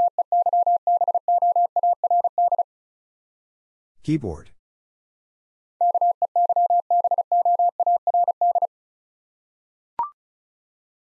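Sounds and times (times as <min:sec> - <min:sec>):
morse code beeps: 0:00.0 - 0:02.6, 0:05.8 - 0:08.7.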